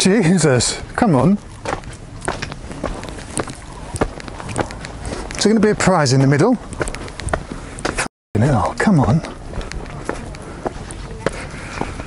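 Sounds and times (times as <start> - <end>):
footsteps on dirt path: 1.4 - 8.1, 8.7 - 12.0.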